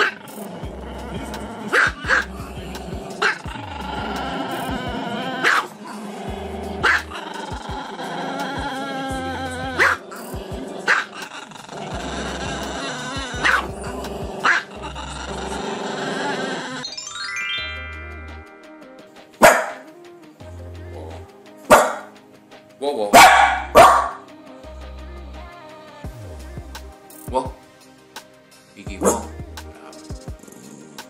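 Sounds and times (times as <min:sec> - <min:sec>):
background music: 0:00.0 - 0:31.0
small dog barking: 0:01.7 - 0:02.3, 0:03.2 - 0:03.5, 0:05.4 - 0:05.7, 0:06.8 - 0:07.1, 0:09.8 - 0:10.0, 0:10.8 - 0:11.3, 0:13.4 - 0:13.7, 0:19.4 - 0:19.9, 0:21.7 - 0:22.1, 0:23.1 - 0:24.2, 0:29.0 - 0:29.3.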